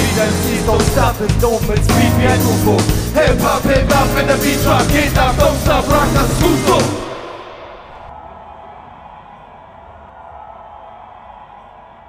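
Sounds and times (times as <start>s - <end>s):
concert crowd ambience: 0.0s - 12.0s
low rumble: 1.0s - 8.1s.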